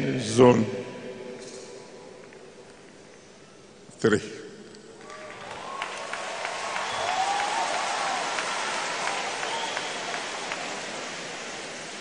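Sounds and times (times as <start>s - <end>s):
crowd applauding: 5.0s - 12.0s.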